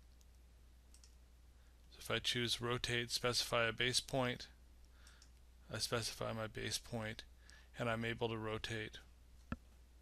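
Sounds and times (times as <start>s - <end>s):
computer mouse clicks: 0.0s - 1.2s, 4.8s - 5.4s.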